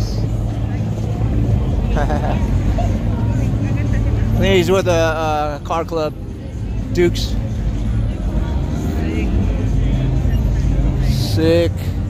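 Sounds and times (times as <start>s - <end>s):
bystanders talking: 0.0s - 12.0s
low engine rumble: 0.0s - 12.0s.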